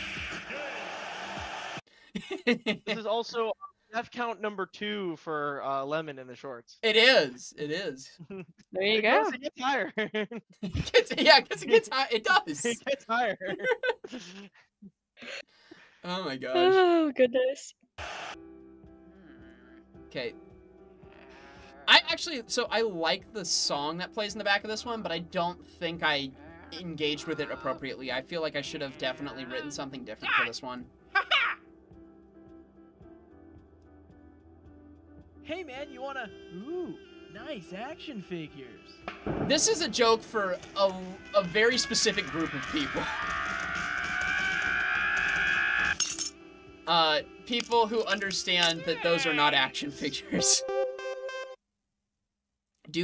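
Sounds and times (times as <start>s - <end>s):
soft background music: 18.4s - 43.7s, 46.0s - 51.5s
cartoon character screaming: 26.6s - 27.8s, 31.2s - 31.6s, 41.7s - 46.0s, 48.7s - 49.6s.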